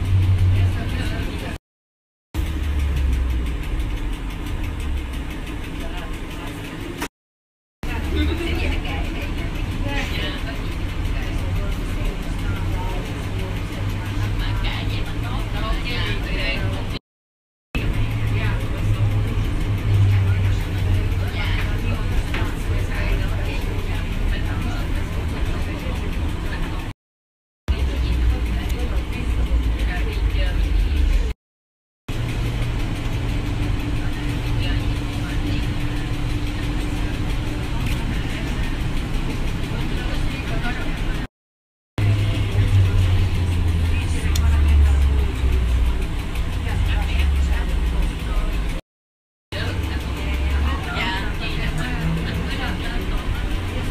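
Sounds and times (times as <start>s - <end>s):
indistinct voices: 0.0s - 1.6s, 7.8s - 17.0s, 17.8s - 26.9s, 27.7s - 31.4s, 32.1s - 41.3s, 42.0s - 48.8s, 49.5s - 53.9s
road rumble: 0.0s - 1.6s, 2.4s - 7.1s, 7.8s - 17.0s, 17.8s - 27.0s, 27.7s - 31.4s, 32.1s - 41.3s, 42.0s - 48.8s, 49.5s - 53.9s.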